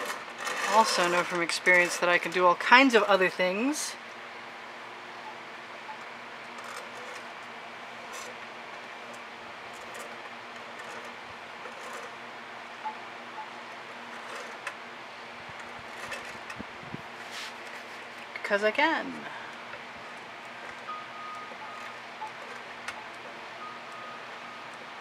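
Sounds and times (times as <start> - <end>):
tool scraping wet paint on canvas: 0.0 - 2.3
steady mechanical hum: 0.0 - 25.0.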